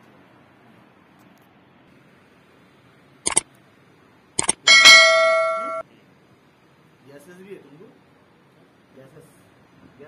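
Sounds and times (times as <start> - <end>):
metallic bell-like ring: 4.7 - 5.8.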